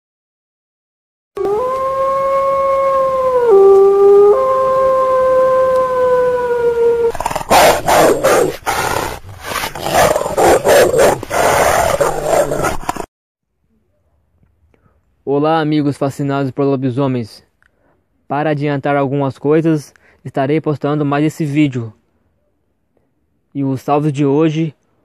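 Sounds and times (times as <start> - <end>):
wolf howl: 1.4 - 13.0
harsh growling: 7.0 - 13.1.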